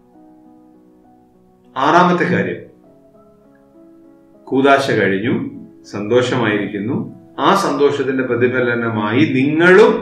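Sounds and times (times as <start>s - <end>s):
man talking: 1.8s - 2.7s, 4.5s - 10.0s.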